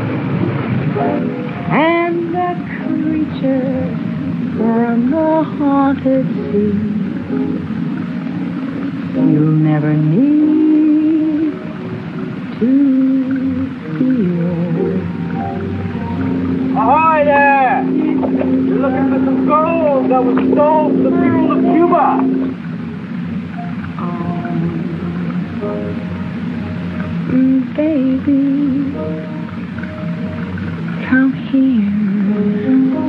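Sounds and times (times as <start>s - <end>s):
musical accompaniment: 0.0s - 33.0s
woman singing: 1.7s - 7.5s, 9.2s - 11.8s, 12.4s - 15.3s, 24.0s - 26.0s, 27.1s - 29.5s, 31.0s - 33.0s.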